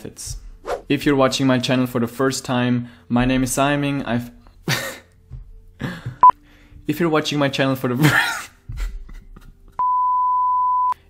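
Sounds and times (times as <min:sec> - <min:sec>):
high-pitched censor bleep: 0:09.8 - 0:11.0.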